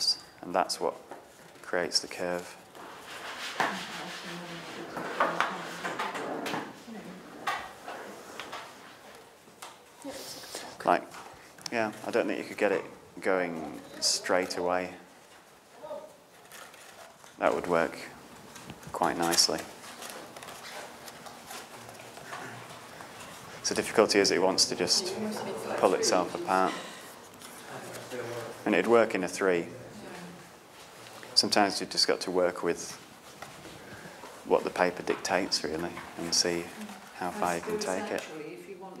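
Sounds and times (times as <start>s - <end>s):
paper rustling: 13.6s - 24.2s, 24.8s - 29.1s
paper clicks and rustles: 16.3s - 23.5s.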